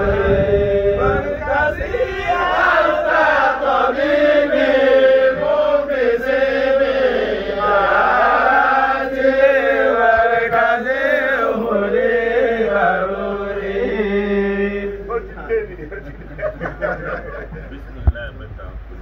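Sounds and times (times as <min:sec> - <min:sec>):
young men chanting in unison: 0:00.0 - 0:15.2.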